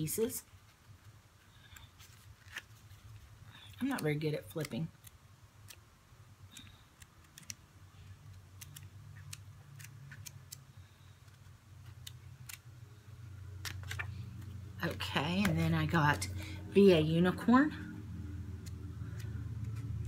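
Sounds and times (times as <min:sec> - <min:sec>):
low steady hum: 0:00.0 - 0:20.0
paper pages flipping: 0:00.5 - 0:05.9, 0:06.5 - 0:12.8, 0:13.5 - 0:15.9.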